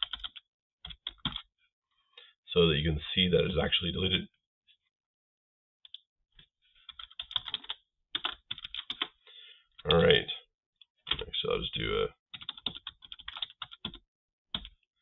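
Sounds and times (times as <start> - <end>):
typing on computer keyboard: 0.0 - 1.5, 6.9 - 9.2, 12.3 - 14.8.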